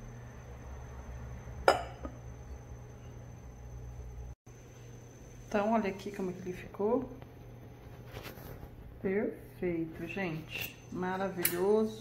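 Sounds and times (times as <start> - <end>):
low steady hum: 0.0 - 12.0
ceramic plate clink: 1.7 - 2.2.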